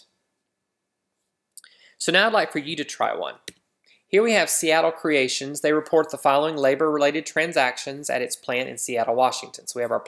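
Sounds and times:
man breathing in: 1.6 - 2.0.

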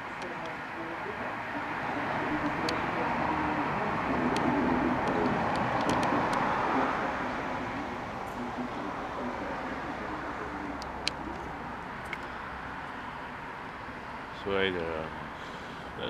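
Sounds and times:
road traffic rushing: 0.0 - 16.0.

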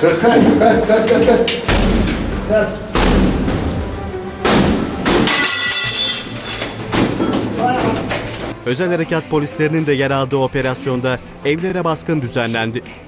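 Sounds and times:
music: 0.0 - 13.0
heavy thuds: 1.7 - 5.3.

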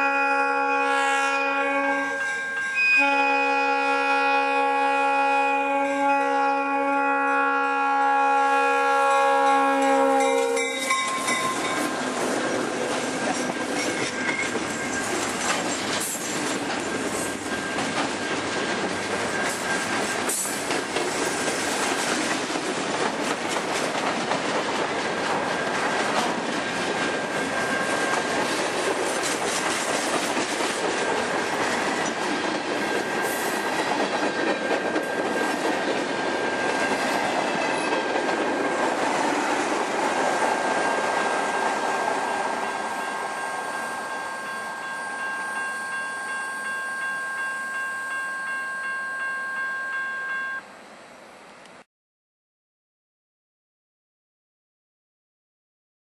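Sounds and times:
locomotive horn: 0.0 - 10.9
train wheels rumbling on rails: 9.7 - 49.0.

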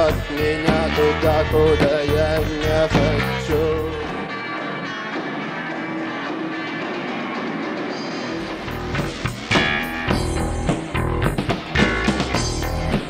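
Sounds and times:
drum kit with sharp hits: 0.0 - 4.1, 7.5 - 13.0
bass guitar: 0.0 - 13.0
electric guitar: 0.0 - 13.0.

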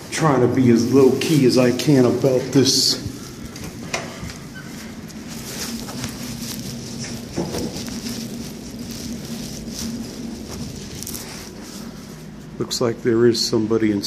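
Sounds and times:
fabric rubbing on microphone: 0.0 - 12.9
low steady hum: 0.0 - 14.0.

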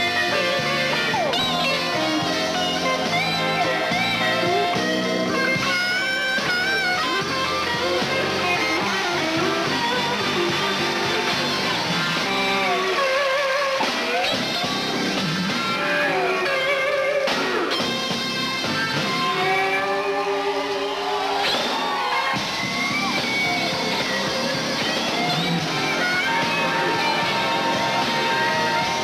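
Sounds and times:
blues band playing: 0.0 - 29.0
electric guitar solo: 0.0 - 29.0.

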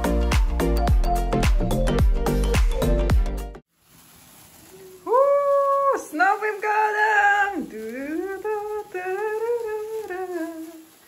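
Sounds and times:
person saying ooh: 4.6 - 7.7.

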